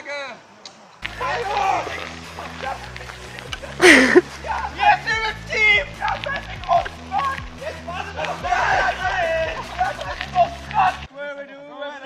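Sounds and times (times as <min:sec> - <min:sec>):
people calling and shouting: 0:00.0 - 0:12.0
background music with low bass: 0:01.0 - 0:11.1.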